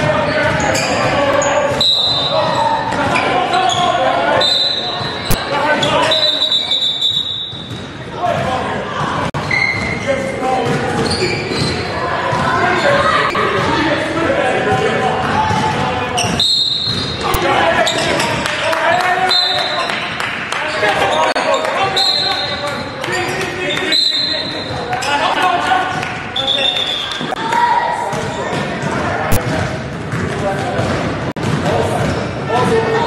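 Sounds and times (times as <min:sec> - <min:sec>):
sneakers squeaking on floor: 0:00.0 - 0:13.8, 0:14.7 - 0:18.5, 0:19.3 - 0:33.0
basketball bouncing: 0:10.6 - 0:13.8, 0:14.7 - 0:17.4, 0:28.1 - 0:32.2.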